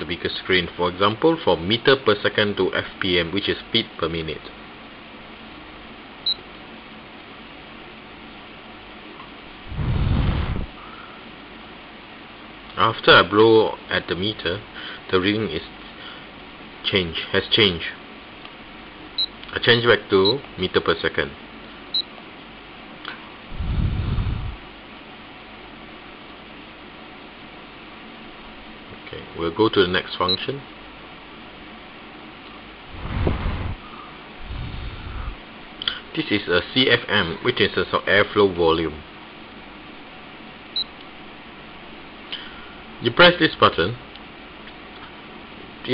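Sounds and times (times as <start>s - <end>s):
breath blowing on microphone: 9.7s - 11.1s, 23.5s - 24.6s, 32.9s - 35.4s.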